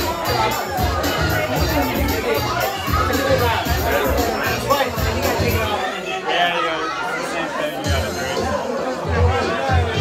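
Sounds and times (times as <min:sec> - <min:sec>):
music with bass beat: 0:00.0 - 0:05.8, 0:07.9 - 0:10.0
crowd talking: 0:00.0 - 0:10.0.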